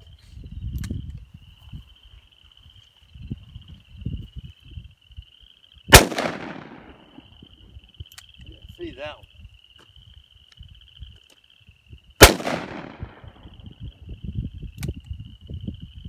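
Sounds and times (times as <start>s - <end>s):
revolver gunshot: 5.9s - 7.2s, 12.2s - 13.4s.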